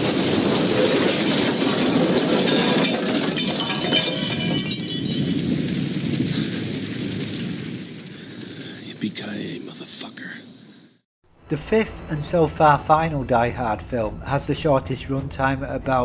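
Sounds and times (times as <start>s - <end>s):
crackling and clinking debris: 0.0s - 8.1s
explosion and flames roaring: 0.0s - 11.0s.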